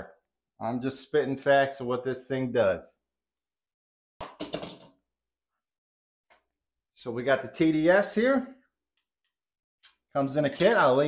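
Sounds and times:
plastic clattering on counter: 4.2s - 4.9s.

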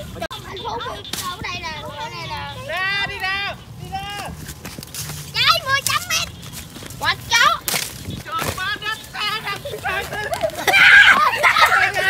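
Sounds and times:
children yelling and shrieking: 5.3s - 6.3s, 9.4s - 12.0s.

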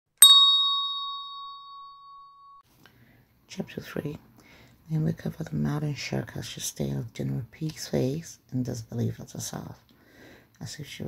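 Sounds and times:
bright bell ding: 0.2s - 2.6s.

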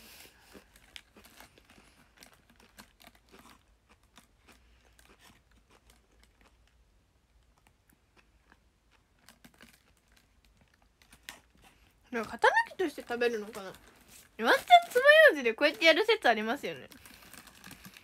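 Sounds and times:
chewing candy crunches: 0.1s - 16.0s, 16.8s - 18.0s.

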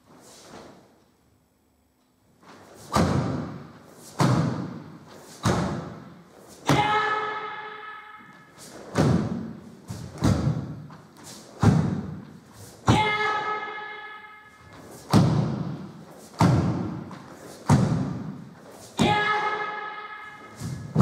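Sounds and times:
person shouting: 6.7s - 8.3s, 12.8s - 14.4s, 19.0s - 20.8s
sharp echoing thuds: 8.9s - 11.0s, 11.6s - 13.2s, 15.0s - 19.6s.

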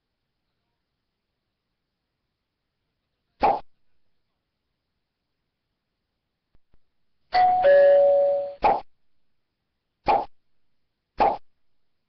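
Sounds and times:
electronic two-tone chime: 7.4s - 8.6s.

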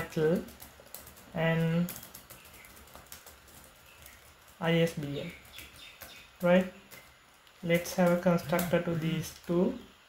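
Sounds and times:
faint keyboard typing: 0.0s - 9.8s.

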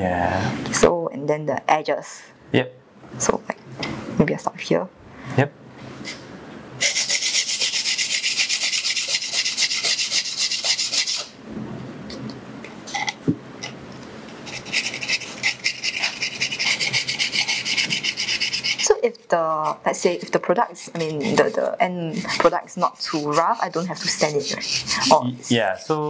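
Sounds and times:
sandpaper scratching: 6.8s - 11.3s, 14.4s - 19.0s, 19.6s - 25.2s.

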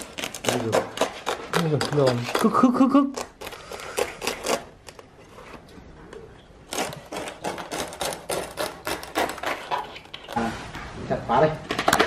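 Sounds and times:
knife cutting crackling pig skin: 0.0s - 5.0s, 6.7s - 10.4s.

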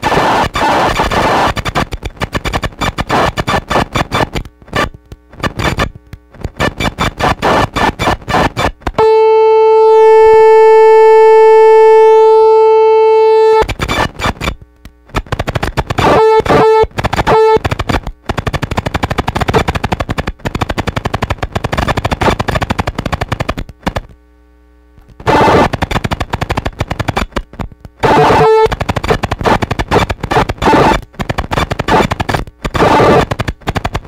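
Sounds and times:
stuttering clicks and glitchy noise: 0.0s - 24.3s, 24.9s - 34.0s
synth held tone: 9.0s - 13.7s, 28.0s - 28.7s.

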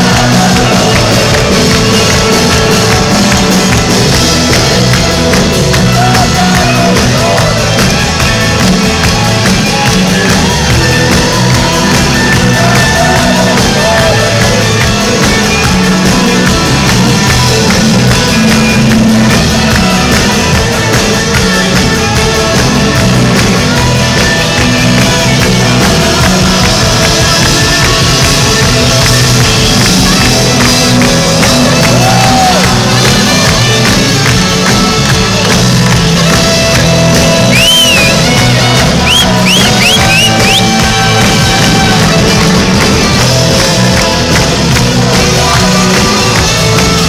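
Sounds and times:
bass guitar: 0.0s - 47.0s
electric guitars: 0.0s - 47.0s
steady drum beat: 0.0s - 47.0s.

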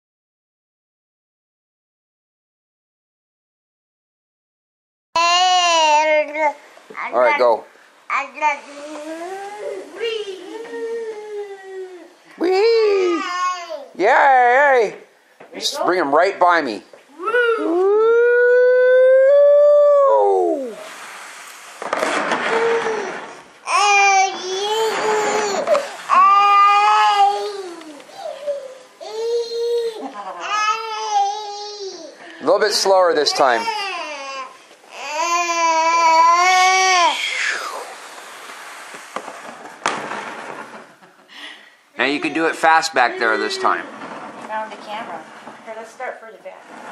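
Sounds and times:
toddler whining: 5.2s - 6.5s, 8.7s - 12.2s, 12.8s - 14.0s, 17.1s - 20.8s, 22.5s - 32.2s, 33.2s - 37.4s
faint steady hiss: 5.2s - 18.0s, 19.2s - 46.9s
rustling scraping noise: 8.3s - 11.4s, 20.7s - 30.1s, 37.8s - 41.2s, 42.0s - 46.9s.

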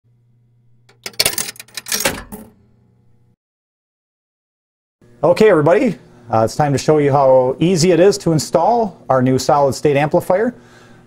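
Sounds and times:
mechanical clicking and clattering: 0.9s - 2.6s.

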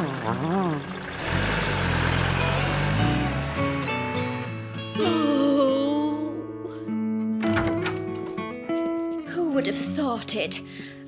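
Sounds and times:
van engine pulling away: 0.0s - 5.0s
background music: 0.0s - 11.0s.

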